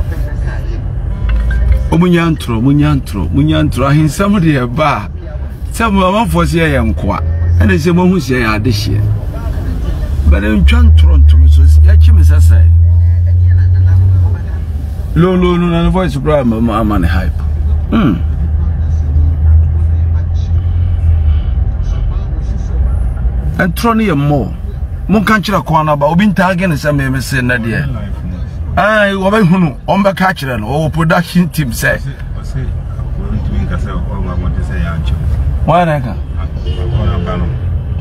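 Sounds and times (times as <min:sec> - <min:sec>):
car cabin engine and road noise: 0:00.0 - 0:38.0.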